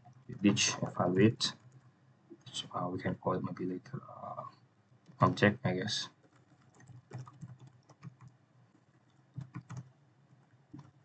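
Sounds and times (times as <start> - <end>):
computer keyboard typing: 6.1 - 11.0.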